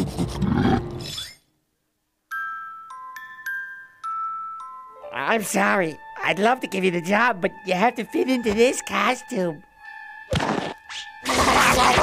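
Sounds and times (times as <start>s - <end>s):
music box chiming notes: 2.3s - 5.0s
person speaking: 5.0s - 9.7s.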